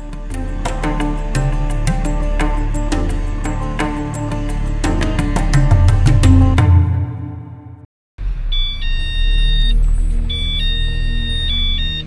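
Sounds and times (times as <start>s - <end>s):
mobile phone ringtone: 8.5s - 12.0s.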